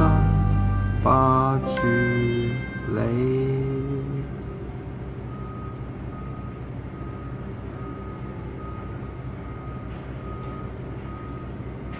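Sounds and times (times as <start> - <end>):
high beep: 0.0 - 4.6.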